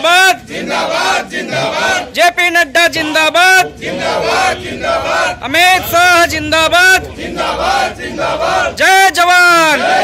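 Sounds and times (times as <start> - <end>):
men shouting together: 0.0 - 2.2, 3.0 - 10.0.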